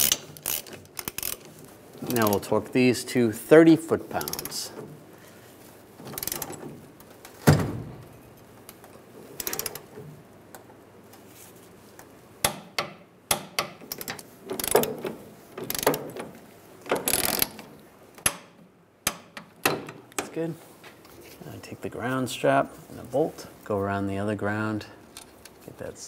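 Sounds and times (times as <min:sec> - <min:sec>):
torque wrench ratcheting clicks: 0:00.0 - 0:01.5, 0:04.2 - 0:04.6, 0:06.2 - 0:06.5, 0:09.4 - 0:09.9, 0:15.7 - 0:16.0, 0:17.1 - 0:17.6.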